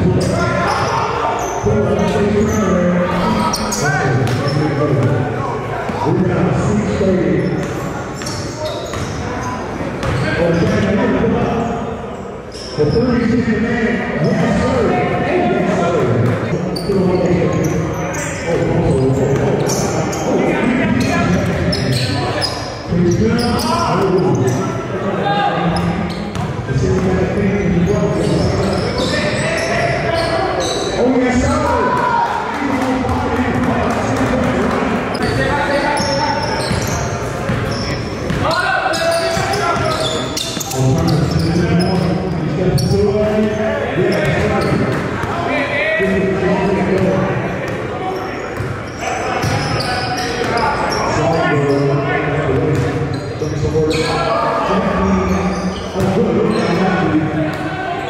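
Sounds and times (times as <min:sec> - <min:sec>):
voices echoing in a hall: 0:00.0 - 0:58.0.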